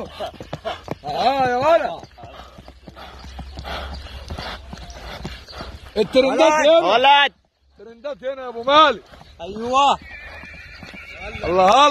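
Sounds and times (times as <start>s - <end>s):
horse hooves on dirt: 0.0s - 11.9s
drawn-out rising and falling call: 8.9s - 11.9s.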